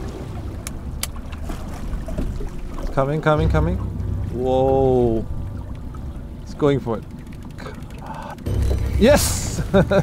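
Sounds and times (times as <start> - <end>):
low thump and rumble: 0.0 - 10.0
fast fine ticking: 6.1 - 9.2.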